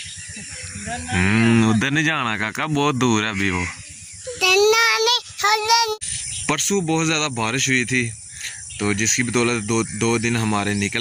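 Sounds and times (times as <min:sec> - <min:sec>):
boy speaking in sing-song voice: 0:04.3 - 0:06.0.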